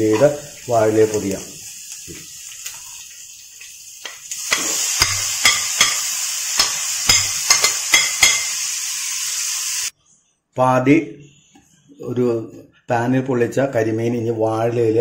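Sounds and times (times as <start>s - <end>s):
onions sizzling in a pan: 0.0s - 9.9s
steel spoon scraping and tapping: 4.5s - 8.6s.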